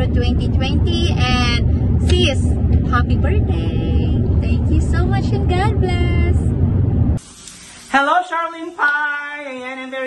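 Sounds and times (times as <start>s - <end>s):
car road noise rumble: 0.0s - 7.2s.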